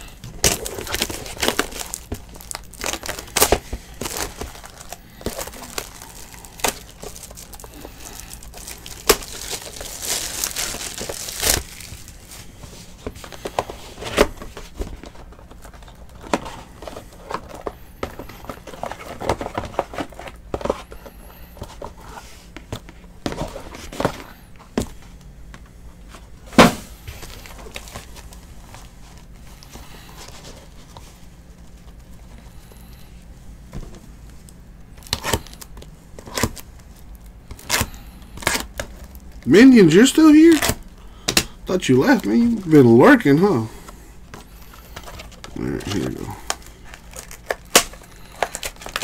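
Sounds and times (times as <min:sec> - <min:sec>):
plastic wrap crinkling and tearing: 0:00.0 - 0:12.5, 0:35.0 - 0:40.9, 0:44.5 - 0:49.0.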